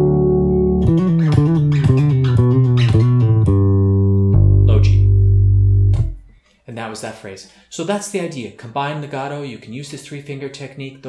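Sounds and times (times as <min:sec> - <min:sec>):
electric bass guitar fingerstyle: 0:00.0 - 0:06.4.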